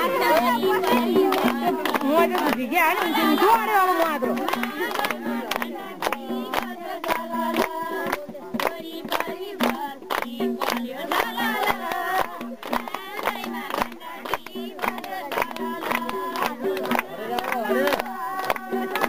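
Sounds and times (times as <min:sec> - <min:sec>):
women singing folk song: 0:00.0 - 0:19.0.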